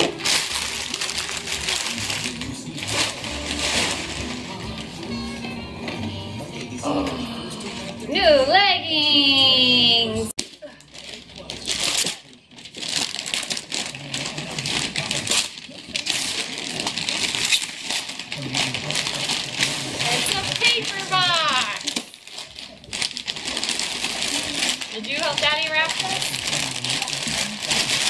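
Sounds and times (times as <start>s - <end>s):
tissue paper crinkling: 0.0s - 5.1s, 10.4s - 28.0s
wrapping paper tearing: 0.0s - 5.1s, 10.4s - 28.0s.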